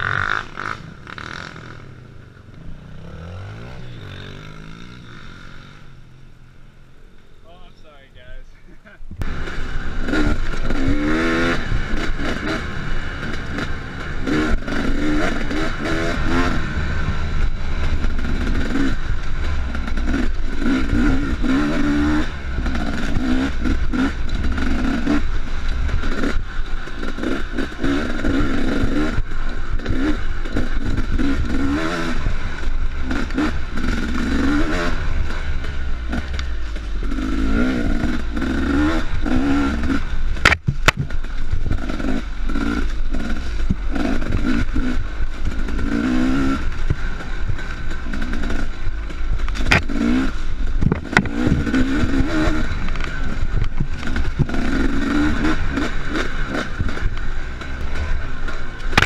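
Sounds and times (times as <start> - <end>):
dirt bike engine revving: 0.0 - 59.0
bike knocking and clattering: 40.0 - 42.2, 46.7 - 54.8, 55.5 - 59.0.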